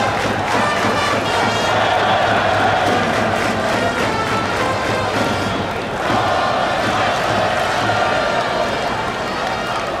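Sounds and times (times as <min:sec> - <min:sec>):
stadium crowd cheering and chanting: 0:00.0 - 0:10.0.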